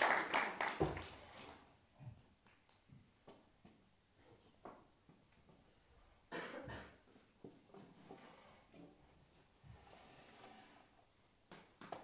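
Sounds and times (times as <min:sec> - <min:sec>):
faint room sound: 0:00.0 - 0:12.0
person coughing: 0:06.3 - 0:07.1.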